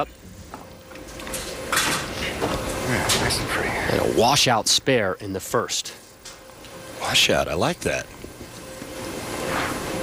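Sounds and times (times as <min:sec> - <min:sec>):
bowling alley room sound: 0:00.0 - 0:10.0.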